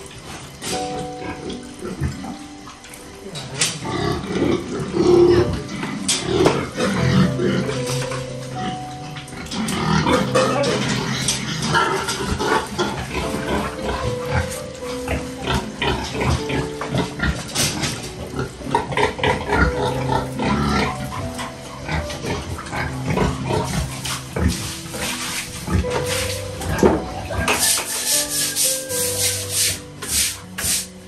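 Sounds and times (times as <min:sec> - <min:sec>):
pigs grunting: 0:00.0 - 0:30.5.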